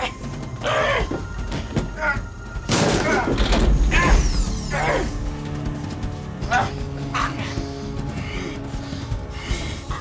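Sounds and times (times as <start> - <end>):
men grunting and crying out: 0.0 - 5.7, 6.3 - 8.7
film score: 0.0 - 10.0.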